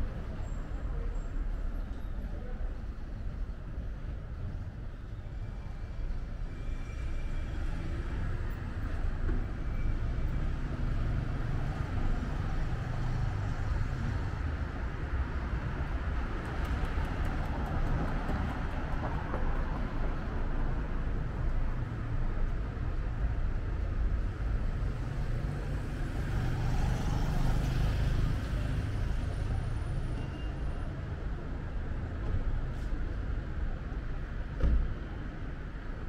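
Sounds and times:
street traffic rumble: 0.0s - 36.0s.

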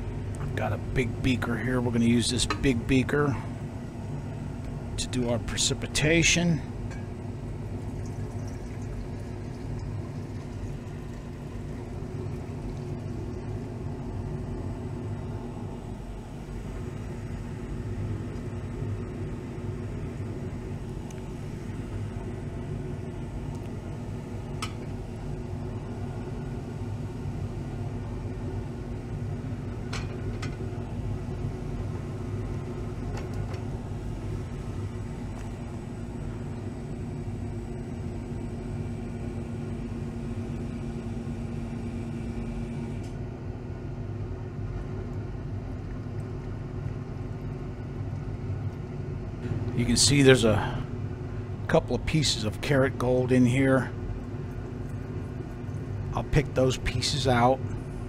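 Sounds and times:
vacuum pump running: 0.0s - 58.0s.

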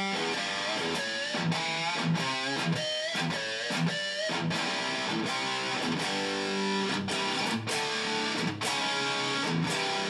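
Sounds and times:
electric guitar lead line: 0.0s - 10.0s.

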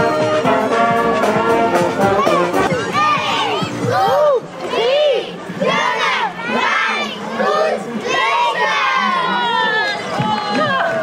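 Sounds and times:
young children shouting: 2.2s - 11.0s.

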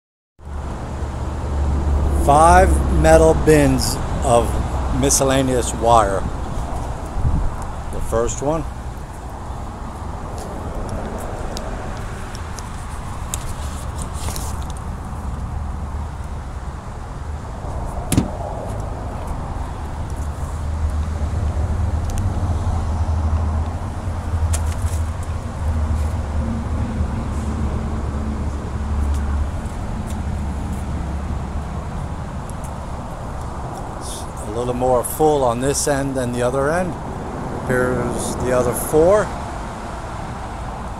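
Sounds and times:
vehicle engine rumbling: 0.4s - 40.9s.

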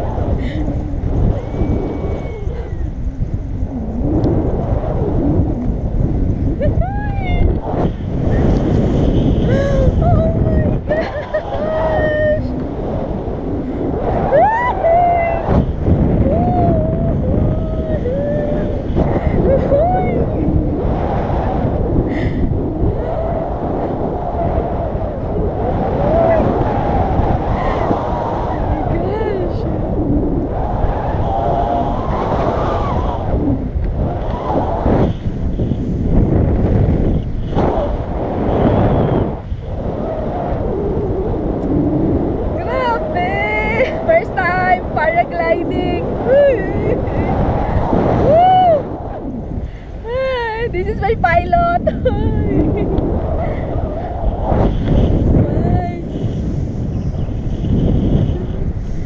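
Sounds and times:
wind noise on microphone: 0.0s - 59.0s
voices: 6.6s - 7.7s, 9.5s - 12.6s, 42.6s - 47.4s, 50.1s - 52.8s.

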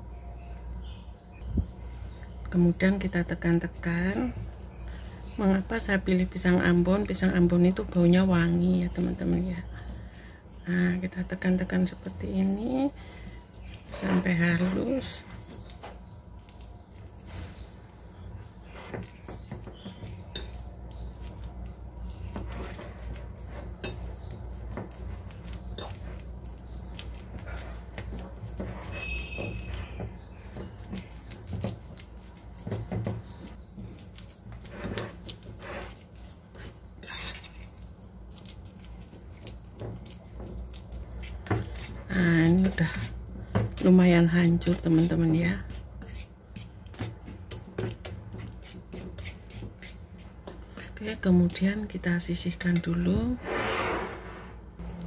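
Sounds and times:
fork clinking and scraping bowl: 19.8s - 21.5s, 22.3s - 30.1s, 32.6s - 37.8s, 45.6s - 51.0s.

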